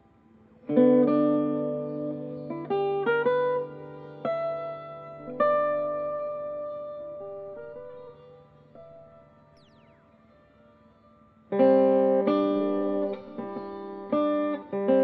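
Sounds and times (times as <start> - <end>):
guitar chords ringing: 0.0 - 15.0.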